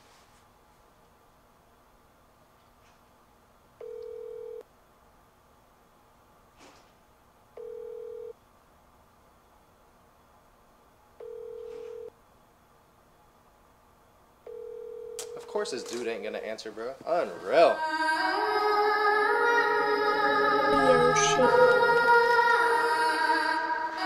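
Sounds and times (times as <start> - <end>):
phone ringback beeps: 11.2 - 12.1.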